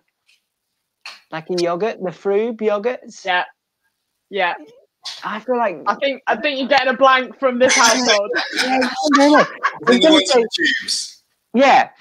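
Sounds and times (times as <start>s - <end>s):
people talking: 1.4s - 3.5s, 4.4s - 11.9s
woman laughing: 7.7s - 10.8s
pitched vocal exclamations: 7.7s - 11.1s.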